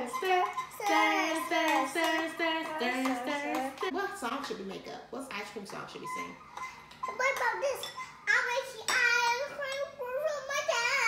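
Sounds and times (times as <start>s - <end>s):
young girl singing: 0.0s - 3.9s, 7.2s - 11.0s.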